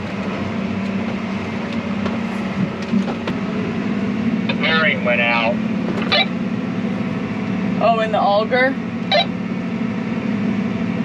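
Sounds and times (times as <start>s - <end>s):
tractor engine droning: 0.0s - 11.0s
person speaking: 4.5s - 5.6s.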